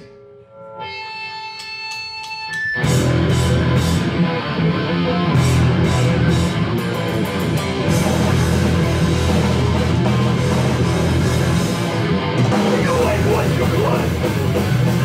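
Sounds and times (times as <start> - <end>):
punk band playing loud: 2.8 - 15.0.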